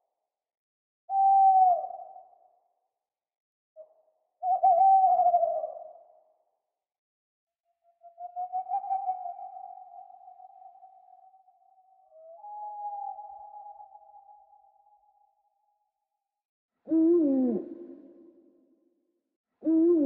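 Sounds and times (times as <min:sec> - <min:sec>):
owl hooting: 0:04.4 - 0:05.9, 0:08.2 - 0:11.2.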